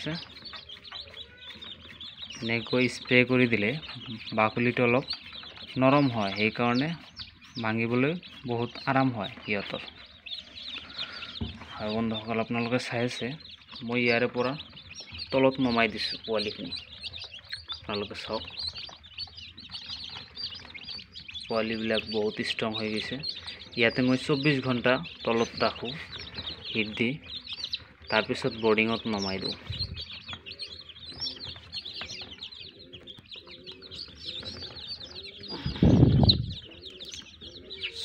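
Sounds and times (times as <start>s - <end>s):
chicks peeping: 0.0s - 38.0s.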